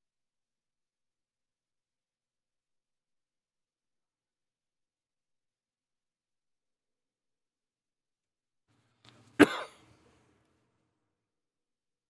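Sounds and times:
short cough: 9.4 - 9.9.

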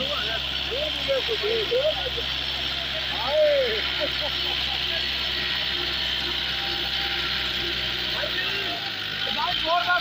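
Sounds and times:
tractor diesel engine running: 0.0 - 10.0.

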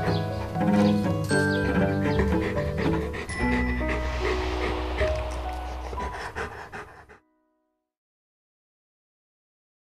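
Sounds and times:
dog panting: 0.0 - 7.2
background music: 0.0 - 7.7.

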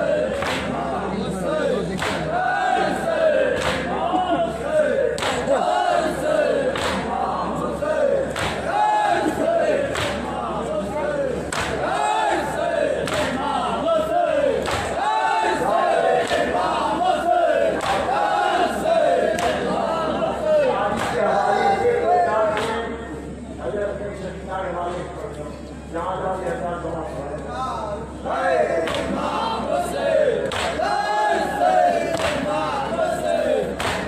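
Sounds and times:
men chanting in unison: 0.0 - 22.9, 28.2 - 34.0
rhythmic chest slaps: 0.2 - 1.0, 1.8 - 10.4, 11.4 - 13.7, 14.4 - 20.0, 20.8 - 21.4, 22.5 - 22.9, 28.8 - 34.0.

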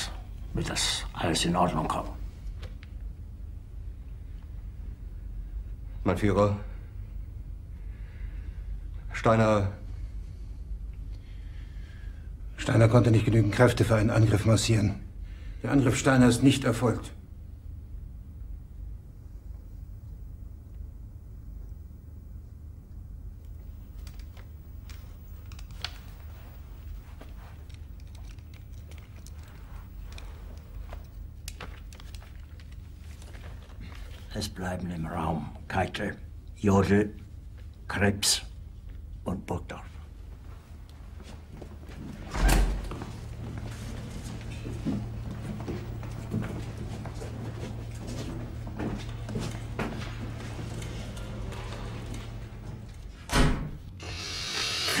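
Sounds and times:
low room tone rumble: 0.0 - 55.0
low hum: 17.1 - 34.3, 40.0 - 54.9
faint clicks and rustles: 22.8 - 34.9, 40.1 - 53.2.

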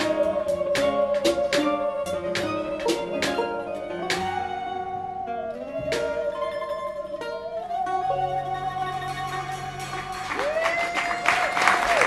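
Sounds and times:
picked resonator guitar: 0.0 - 10.4
bowed musical saw: 0.0 - 10.8.

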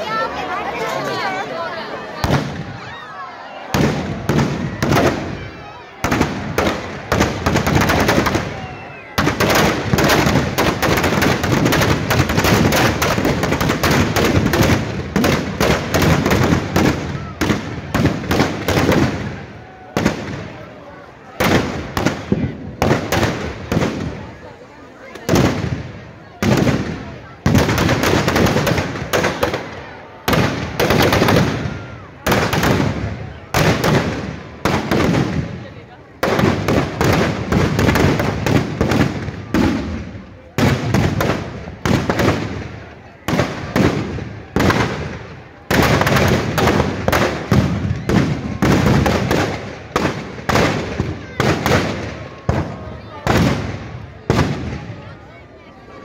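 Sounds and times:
crowd voices: 0.0 - 56.0
firecrackers banging: 2.1 - 2.9, 3.6 - 55.2.

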